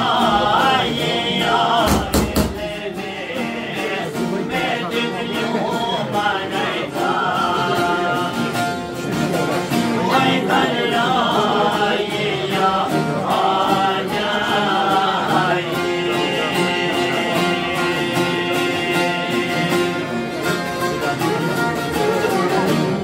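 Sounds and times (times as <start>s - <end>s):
men singing folk song: 0.0s - 21.0s
lutes strumming: 0.0s - 23.0s.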